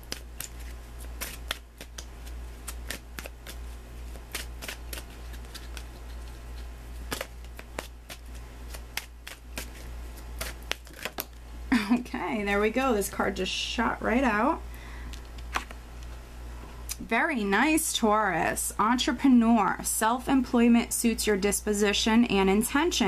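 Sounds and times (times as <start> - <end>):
cards being shuffled: 0.0 - 11.4, 15.2 - 15.8
low steady hum: 0.0 - 23.0.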